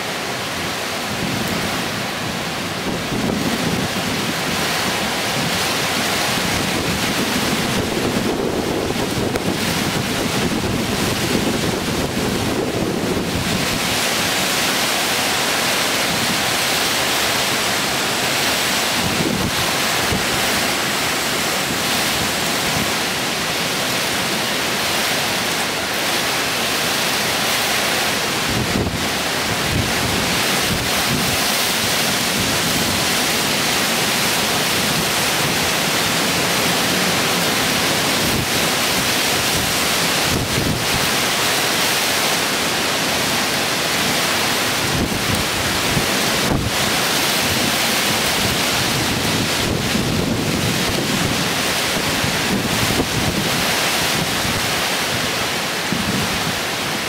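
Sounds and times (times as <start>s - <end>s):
strong wind rushing through trees: 0.0s - 57.0s
wind buffeting microphone: 1.0s - 14.6s, 17.4s - 25.2s, 28.4s - 41.4s, 43.8s - 57.0s.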